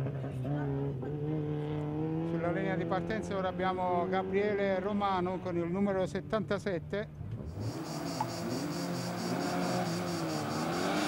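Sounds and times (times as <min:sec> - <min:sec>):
race car engine revving: 0:07.4 - 0:11.0
insects chirring: 0:07.5 - 0:11.0.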